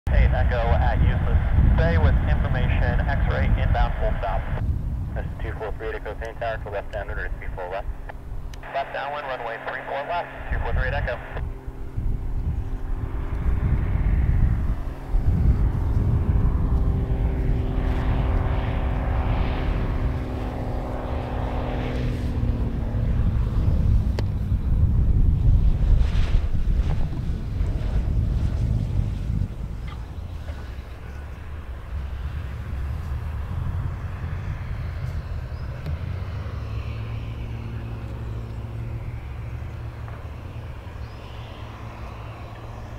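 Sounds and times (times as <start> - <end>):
propeller plane engine droning: 0.0 - 42.9
low rumble: 0.1 - 42.9.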